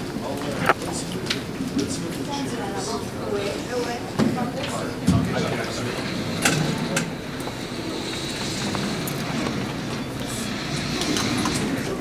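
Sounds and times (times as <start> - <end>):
murmur of people: 0.0 - 12.0.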